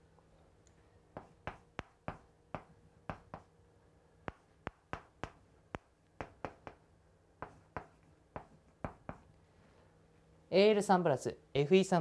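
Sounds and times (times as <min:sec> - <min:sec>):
chalk tapping on blackboard: 0:01.1 - 0:03.5, 0:04.2 - 0:09.3.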